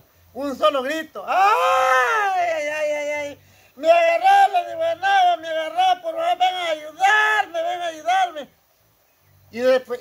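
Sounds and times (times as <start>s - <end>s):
man wailing in fright: 1.3s - 3.4s.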